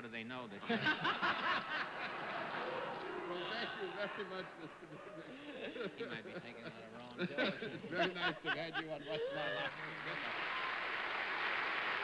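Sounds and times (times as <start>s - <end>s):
man talking: 3.2s - 10.4s.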